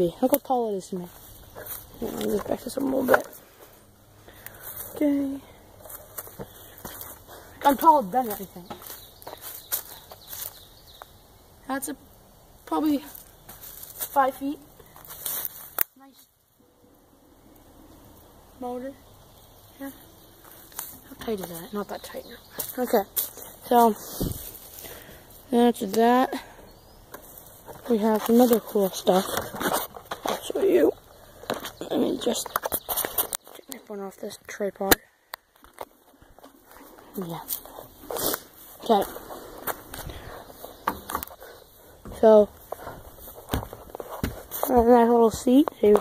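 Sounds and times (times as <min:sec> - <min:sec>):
rustles: 0:00.0 - 0:46.0.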